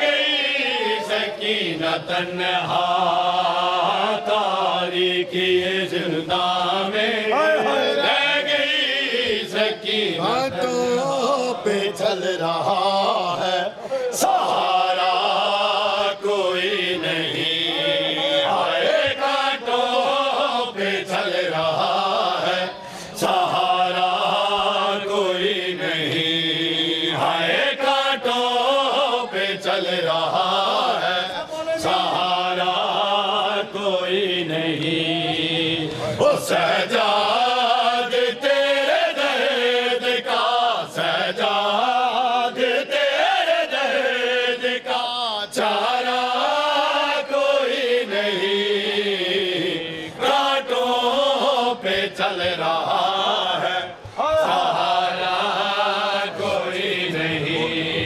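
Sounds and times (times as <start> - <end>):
men chanting through loudspeakers: 0.0 - 58.0.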